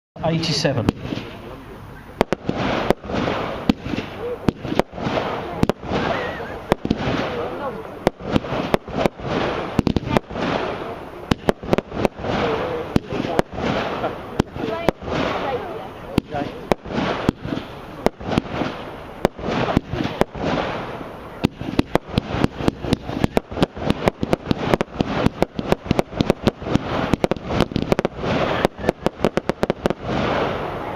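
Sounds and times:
firework bangs: 0.2 - 30.9
firework noisy rush: 0.2 - 30.9.

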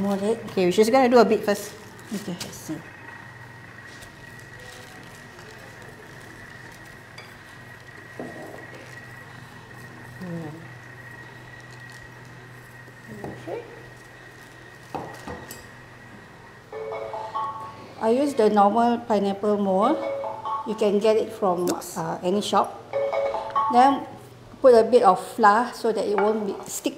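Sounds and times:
steady low hum: 0.0 - 26.9.

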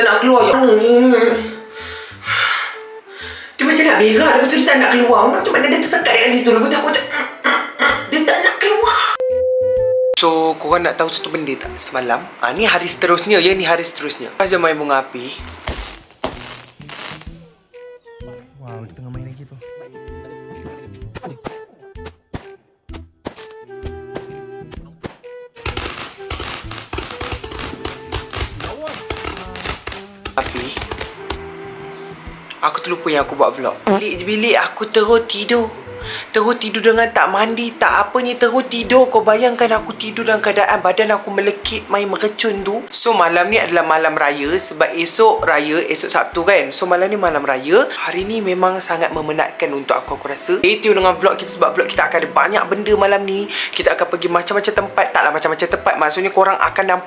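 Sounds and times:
background music: 0.0 - 57.0
fireworks popping and crackling: 15.4 - 17.4, 25.6 - 31.4
man speaking: 18.3 - 19.7, 28.6 - 30.8.

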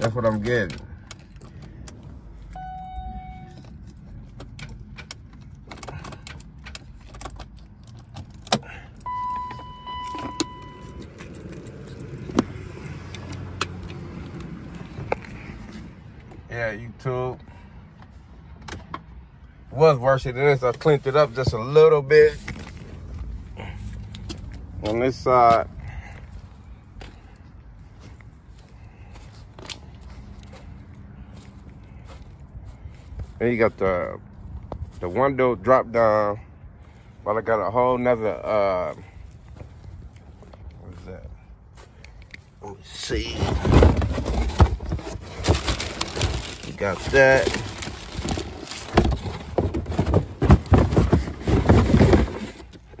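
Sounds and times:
keys jangling in ignition: 0.0 - 12.4
electronic warning chime: 2.6 - 3.6, 9.1 - 11.1.

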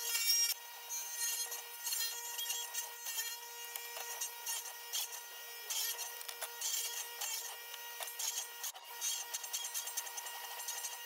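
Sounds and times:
saw cutting bursts: 0.0 - 11.0
table saw high whine: 0.0 - 11.0.

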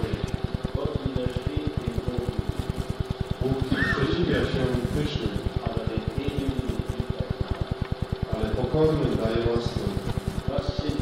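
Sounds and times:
sermon speech on tape: 0.0 - 2.6, 3.4 - 7.5, 8.2 - 11.0
pulsing low buzz: 0.0 - 11.0.

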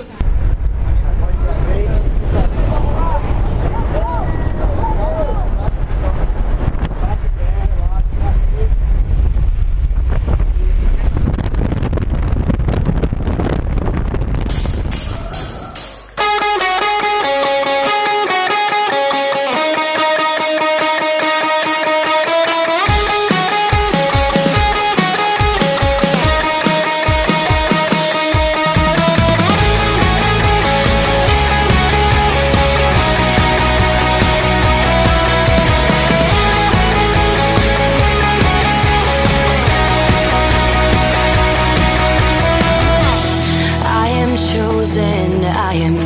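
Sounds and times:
loud low rumbling noise: 0.0 - 16.2, 28.7 - 46.0
rock music with electric guitar: 14.5 - 46.0.

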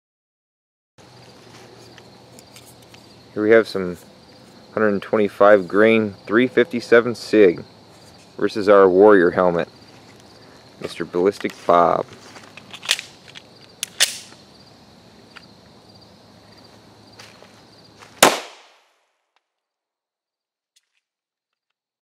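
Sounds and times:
insect chirring: 1.0 - 18.1
pistol shot: 13.9 - 14.3, 18.2 - 18.8.

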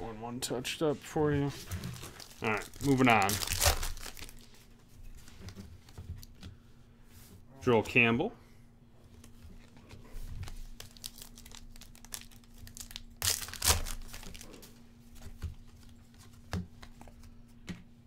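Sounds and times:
foil wrapper crinkling and tearing: 1.9 - 4.6, 10.4 - 14.7.

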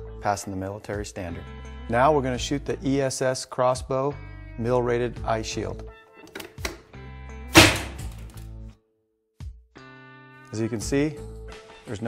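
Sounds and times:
sharp gunshot: 7.6 - 8.2.

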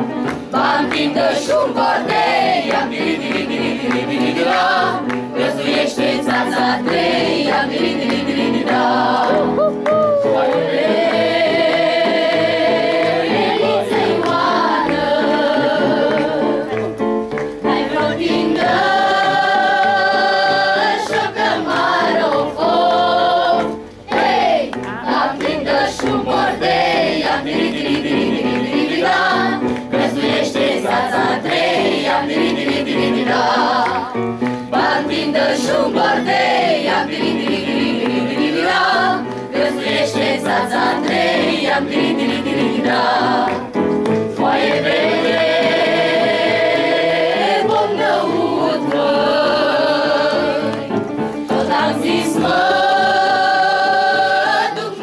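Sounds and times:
mixed choir singing folk song: 0.0 - 55.0.

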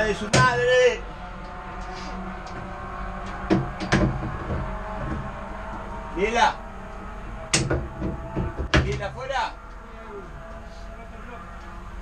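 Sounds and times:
sharp knocks: 0.3 - 0.6, 3.3 - 5.3, 7.5 - 9.1.

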